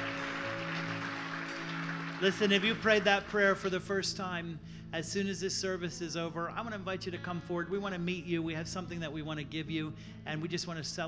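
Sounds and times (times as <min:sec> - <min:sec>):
worship band sustained chords: 0:00.0 - 0:09.2.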